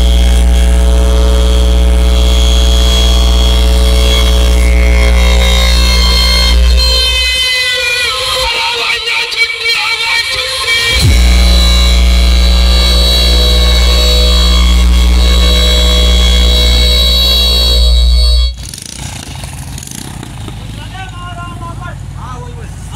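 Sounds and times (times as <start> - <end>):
bass-heavy electronic chord: 0.0 - 8.6, 10.2 - 18.8
outdoor voices: 0.0 - 16.9, 17.5 - 22.9.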